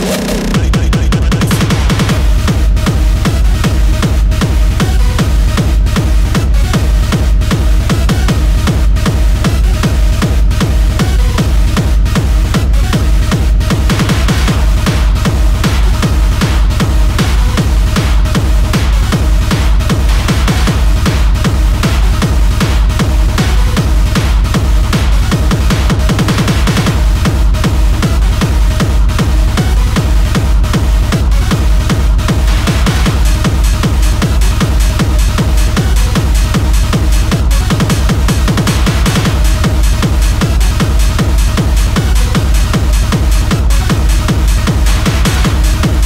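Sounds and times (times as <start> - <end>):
hard techno music: 0.0 - 46.0
heavy kick drum: 0.0 - 46.0.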